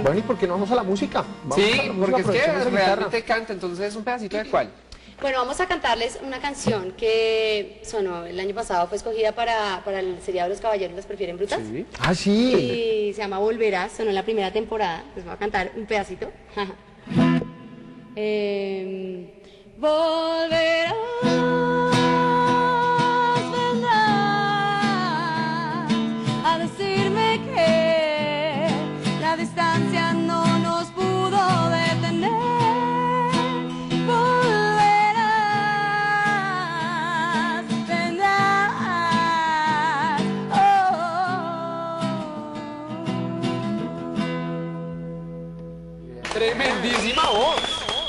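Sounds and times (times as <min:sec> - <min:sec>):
nylon-string guitar: 0:00.0 - 0:03.3, 0:17.0 - 0:18.4, 0:20.5 - 0:46.1
woman singing ballad with vibrato: 0:18.0 - 0:45.3.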